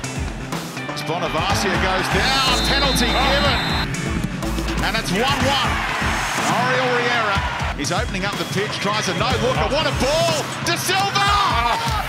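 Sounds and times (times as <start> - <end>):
background music: 0.0 - 12.0
man's voice: 0.9 - 3.9, 4.8 - 5.8, 6.5 - 12.0.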